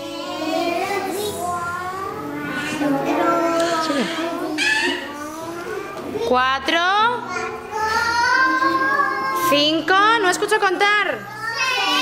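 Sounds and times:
children's voices sing-song: 0.0 - 6.2, 7.3 - 9.4, 11.4 - 12.0.

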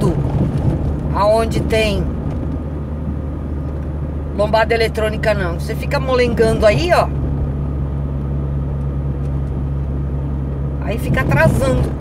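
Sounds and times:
car engine hum and road noise: 0.0 - 12.0.

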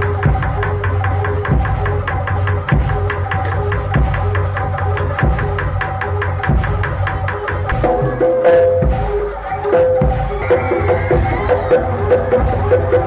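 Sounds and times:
fast steady drum beat: 0.0 - 13.0
repeating gamelan melody: 0.0 - 13.0.

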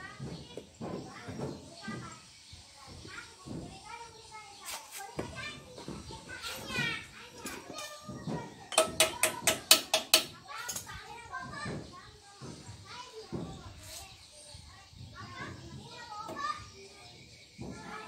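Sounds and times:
children's voices: 0.0 - 18.0.

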